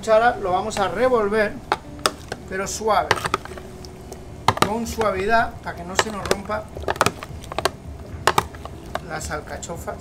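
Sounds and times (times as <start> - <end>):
spoon stirring vegetables: 1.6 - 9.6.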